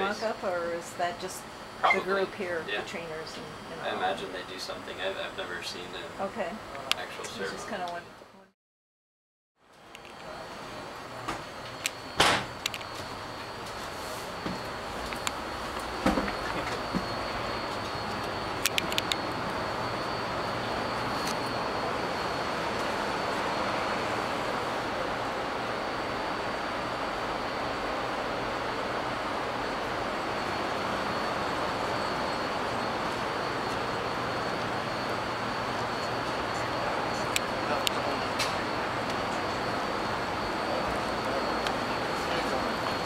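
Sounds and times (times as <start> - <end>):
faint high whine: 0.0 - 8.5, 9.6 - 43.0.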